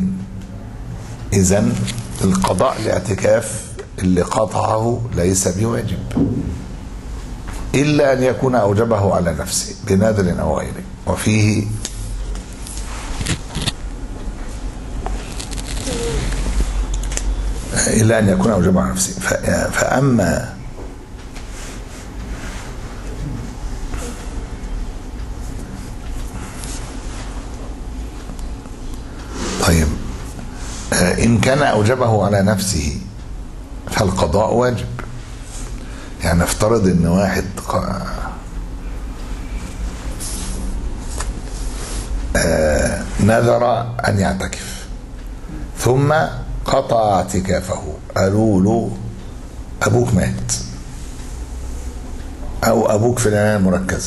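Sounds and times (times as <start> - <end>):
steady low hum: 0.0 - 54.0
man speaking: 1.3 - 6.2, 7.8 - 11.8, 17.7 - 20.6, 29.6 - 30.2, 30.9 - 33.2, 33.9 - 35.0, 36.2 - 38.4, 42.3 - 44.9, 45.8 - 49.2, 49.8 - 50.8, 52.6 - 54.0.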